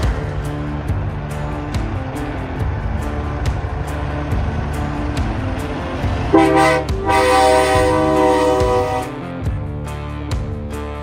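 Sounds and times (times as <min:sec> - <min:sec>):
background music: 0:00.0 - 0:11.0
truck air horn: 0:06.3 - 0:09.2.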